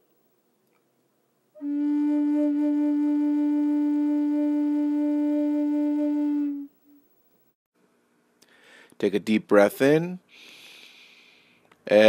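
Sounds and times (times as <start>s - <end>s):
flute holding low note: 1.6s - 7.0s.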